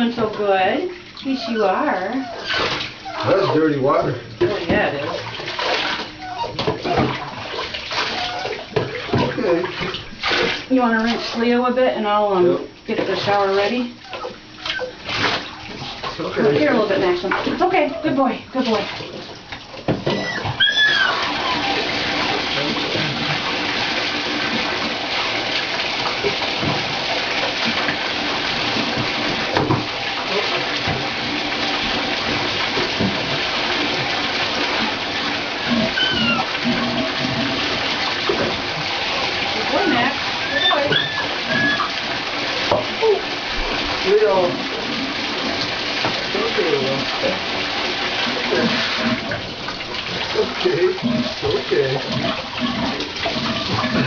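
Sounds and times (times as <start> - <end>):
tap running into bathtub: 0.0 - 12.3, 12.9 - 54.0
short high squeaks: 20.1 - 21.8, 40.5 - 41.9.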